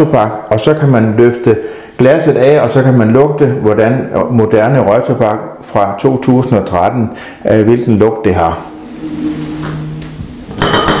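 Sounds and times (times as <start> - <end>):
low steady hum: 8.3 - 11.0
glass lid clinking on glass jar: 10.6 - 11.0.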